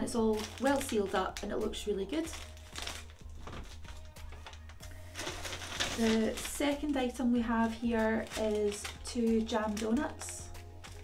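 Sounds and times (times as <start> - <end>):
faint music: 0.0 - 11.0
food packaging rustling: 2.2 - 7.0, 7.7 - 11.0.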